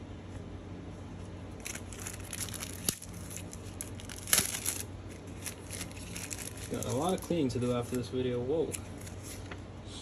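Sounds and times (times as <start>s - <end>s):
card pack wrapper crinkling: 1.6s - 9.5s.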